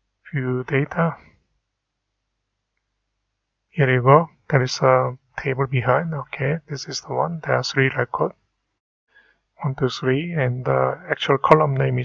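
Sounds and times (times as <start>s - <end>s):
spoken word: 0.3s - 1.2s, 3.8s - 8.3s, 9.6s - 12.0s.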